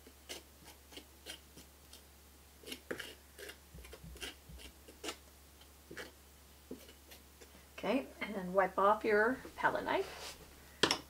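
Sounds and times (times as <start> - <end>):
palette knife tapping and scraping: 2.6 - 5.2, 5.9 - 7.2.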